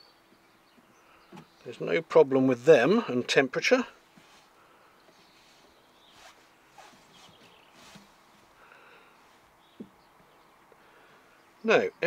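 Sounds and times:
faint rustling and handling: 0:04.0 - 0:10.0.

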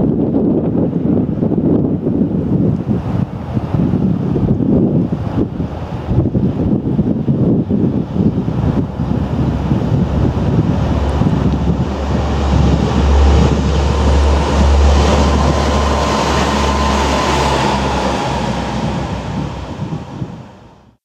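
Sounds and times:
wind buffeting microphone: 0:00.0 - 0:21.0
train rushing past: 0:08.0 - 0:21.0.

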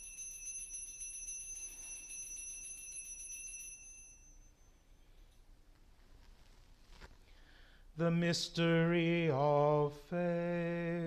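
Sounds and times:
altar bells ringing: 0:00.0 - 0:05.5.

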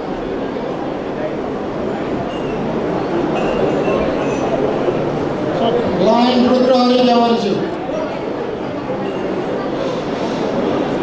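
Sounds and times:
crowd murmur in a hall: 0:00.0 - 0:11.0.

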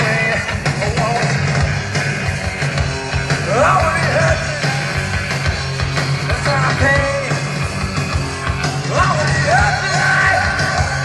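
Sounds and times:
live grunge band playing: 0:00.0 - 0:11.0.

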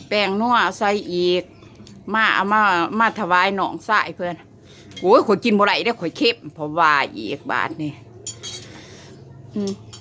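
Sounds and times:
spoons clinking on plates: 0:04.7 - 0:05.4, 0:08.1 - 0:10.0.

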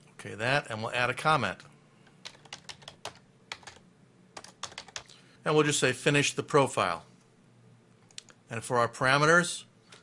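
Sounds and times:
keyboard typing: 0:01.6 - 0:03.8, 0:04.4 - 0:05.1.

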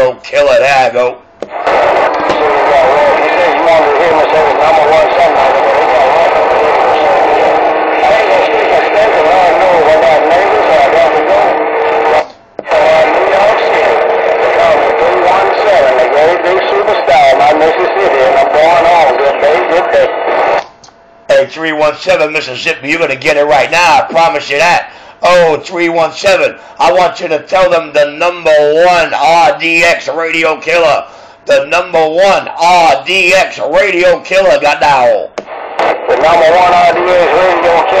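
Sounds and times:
voice over cb radio speaker: 0:01.5 - 0:20.6, 0:21.4 - 0:38.0.

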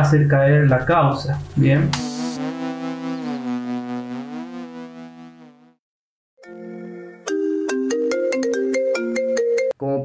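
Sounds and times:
electronic jingle: 0:02.0 - 0:05.7.

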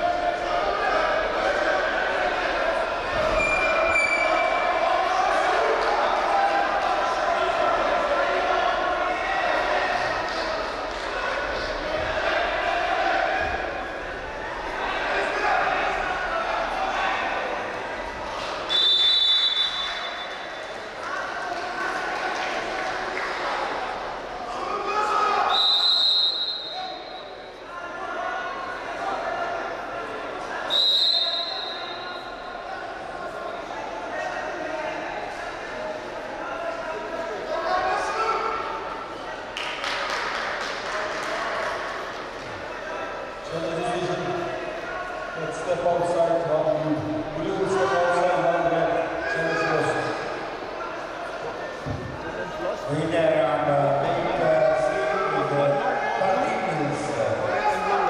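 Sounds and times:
voices echoing in sports hall: 0:00.0 - 0:58.0
referee's whistle blasts: 0:18.7 - 0:20.5, 0:25.5 - 0:27.4, 0:30.7 - 0:32.5.

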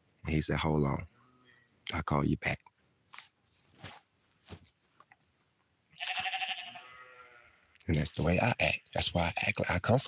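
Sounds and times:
farm animal bleating: 0:06.0 - 0:07.8.

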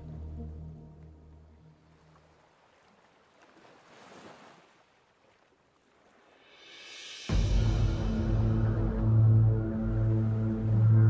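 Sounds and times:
faint ocean surf: 0:01.0 - 0:11.0.

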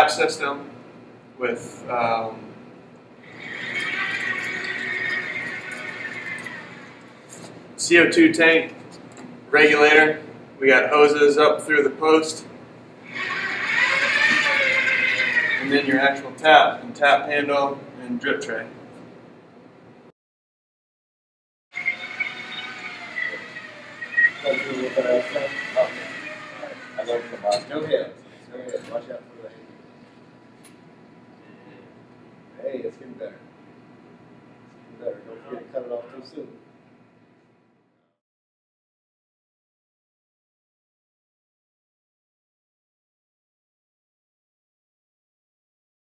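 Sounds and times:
people talking: 0:00.0 - 0:00.7, 0:01.4 - 0:02.5, 0:07.8 - 0:08.8, 0:09.5 - 0:12.5, 0:15.6 - 0:18.7, 0:24.4 - 0:29.6, 0:32.6 - 0:33.4, 0:35.0 - 0:36.6
electric drive motors whining: 0:03.2 - 0:07.4, 0:13.0 - 0:16.4, 0:21.8 - 0:28.1.

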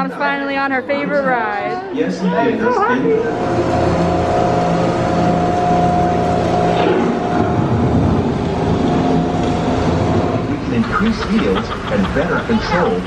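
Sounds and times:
droning hum with held tones: 0:00.0 - 0:13.0
recorded narrator speaking: 0:10.6 - 0:13.0.

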